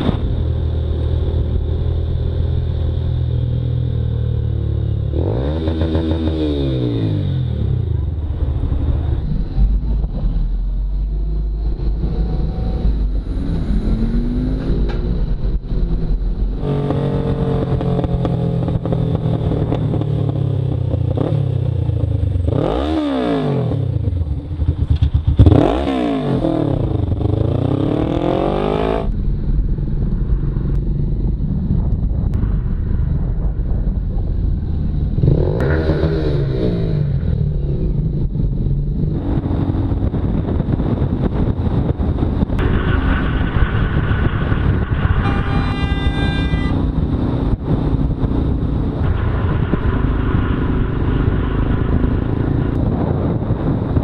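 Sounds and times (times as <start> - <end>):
motorcycle engine revving: 0.0 - 29.2, 34.9 - 54.0
road noise: 0.0 - 54.0.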